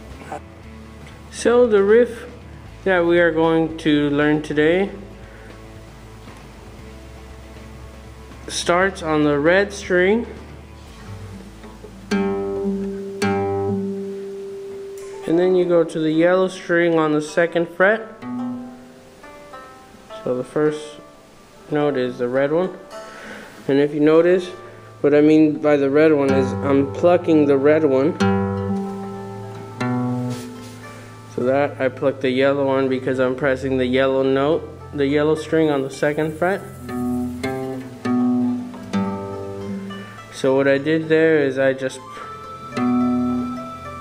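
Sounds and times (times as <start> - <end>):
acoustic guitar plucked notes: 0.0 - 44.0.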